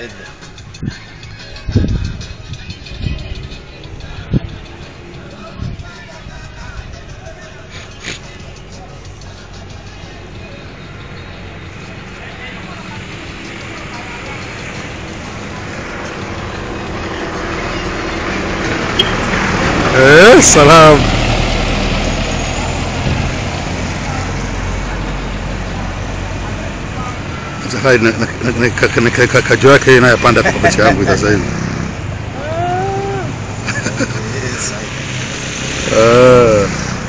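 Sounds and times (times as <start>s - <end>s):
vehicle engine and road noise: 0.0s - 37.0s.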